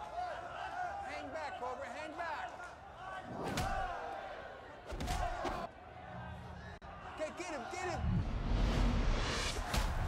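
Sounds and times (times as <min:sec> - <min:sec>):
crowd shouting: 0:00.0 - 0:08.1.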